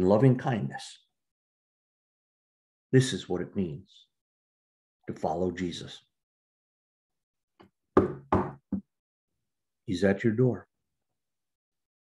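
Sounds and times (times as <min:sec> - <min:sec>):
knocking on door: 0:08.0 - 0:08.8.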